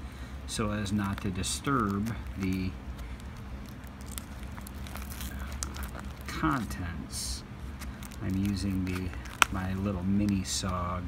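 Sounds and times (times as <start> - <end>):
low steady hum: 0.0 - 11.0
small scissors snipping paper: 0.8 - 6.7, 7.8 - 10.8.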